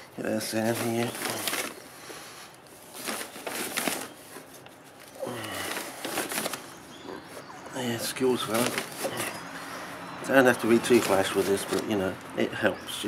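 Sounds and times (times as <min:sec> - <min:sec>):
sack rustling: 0:00.2 - 0:12.2.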